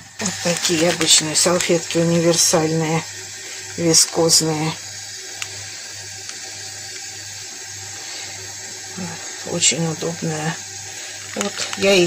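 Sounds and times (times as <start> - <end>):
water running from a tap: 0.0 - 12.0.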